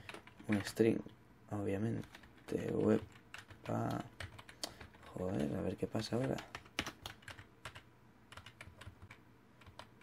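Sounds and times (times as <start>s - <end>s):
faint keyboard typing: 0.0s - 10.0s.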